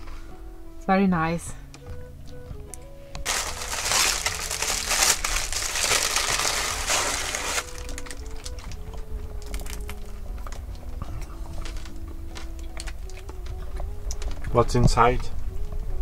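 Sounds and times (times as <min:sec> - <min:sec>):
soft background music: 0:00.0 - 0:16.0
paper bag rustling: 0:03.2 - 0:08.8.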